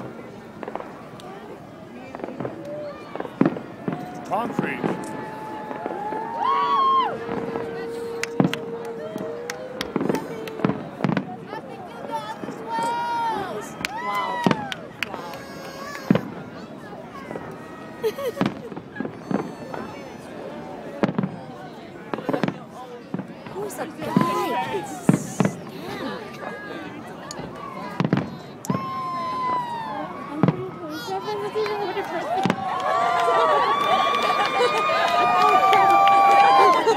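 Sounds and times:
distant fireworks bangs: 0.5s - 1.5s, 2.1s - 6.3s, 7.2s - 11.5s, 14.4s - 16.5s, 18.4s - 20.0s, 21.0s - 21.5s, 28.0s - 29.0s
long steady tone: 4.1s - 11.0s.

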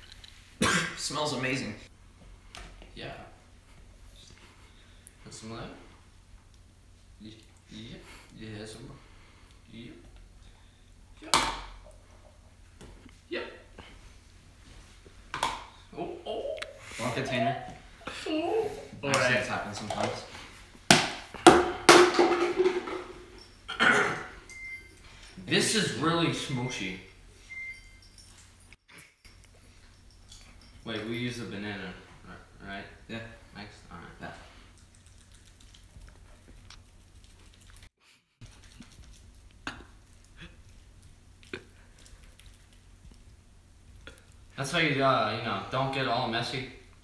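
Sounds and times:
wet squishing of banana: 34.6s - 44.5s.

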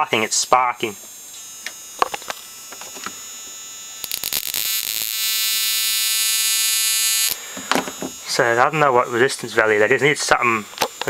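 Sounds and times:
sparks crackling: 0.0s - 9.4s, 10.0s - 11.0s.

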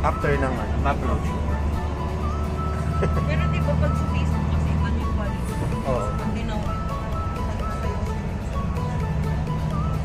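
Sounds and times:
vehicle engine and road rumble: 0.0s - 10.0s.

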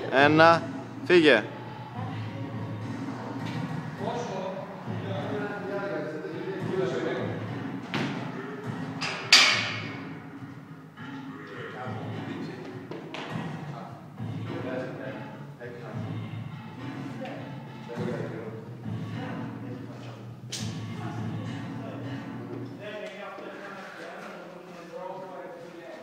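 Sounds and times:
indistinct voices in gym hall: 0.0s - 26.0s.

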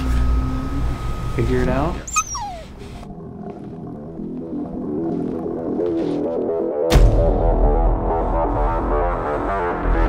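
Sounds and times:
slow moody music: 2.2s - 10.0s.

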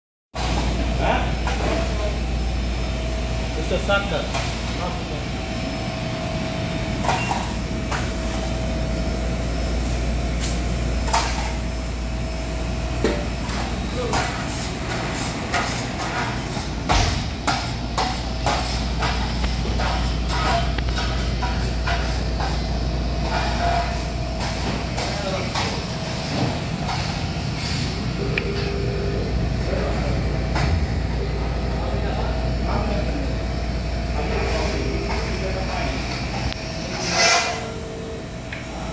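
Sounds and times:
ventilation hum: 0.4s - 38.9s.

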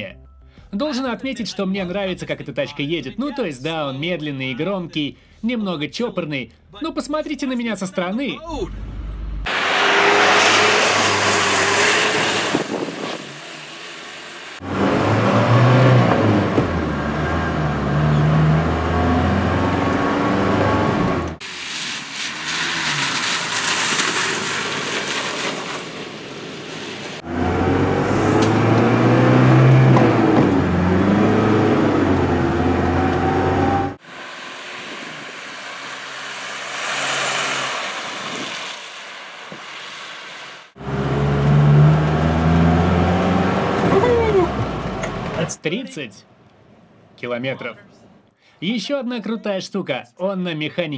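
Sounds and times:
road noise: 8.2s - 48.6s
diesel engine accelerating: 8.5s - 38.7s, 40.7s - 45.5s.

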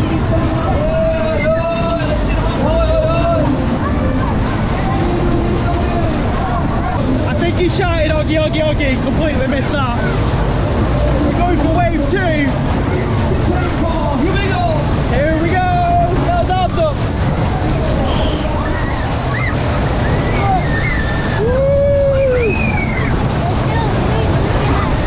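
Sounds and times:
wind rush and rumble: 0.0s - 25.0s
riders calling out and whooping: 17.9s - 23.8s.

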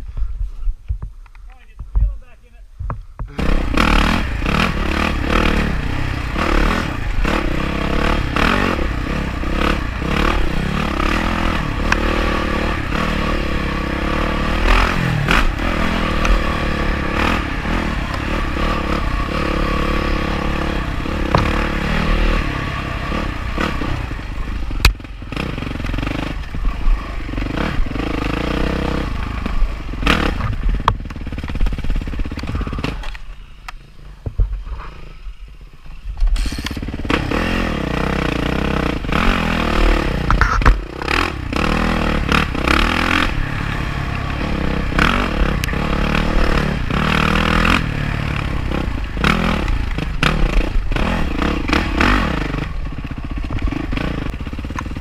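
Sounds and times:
dirt bike engine revving: 3.3s - 33.5s, 36.3s - 55.0s.

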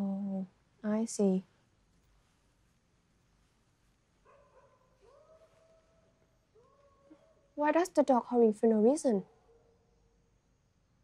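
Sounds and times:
dog howling: 4.3s - 7.4s.

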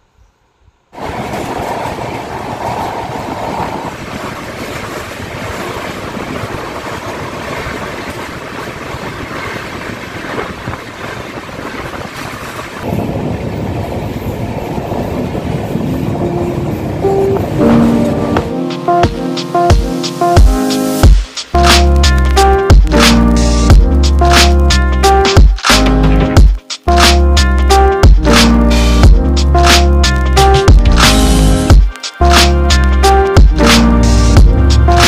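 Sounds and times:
train wheels on rails: 1.0s - 24.3s.

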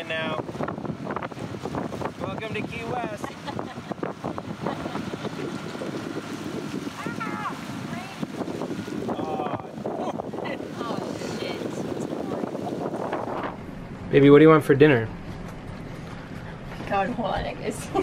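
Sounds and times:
rushing water: 0.0s - 14.5s
outboard motor running: 0.0s - 18.0s
wind buffeting microphone: 0.0s - 18.0s.

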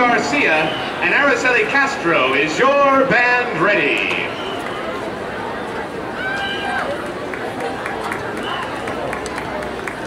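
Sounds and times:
crowd voices talking and calling: 0.0s - 10.0s
scattered sharp claps: 7.3s - 10.0s.

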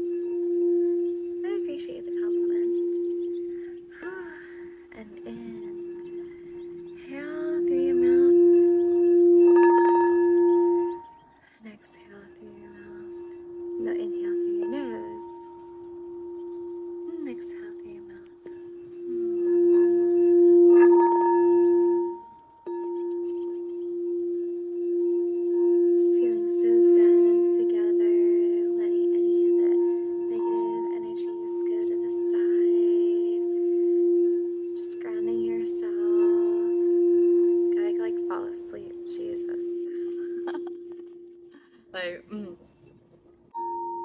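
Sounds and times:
singing bowl ringing: 0.0s - 42.0s, 43.5s - 44.0s.

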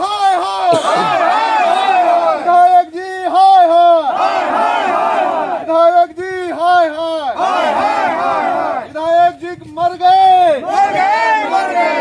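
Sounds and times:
men chanting slogans: 0.0s - 12.0s.

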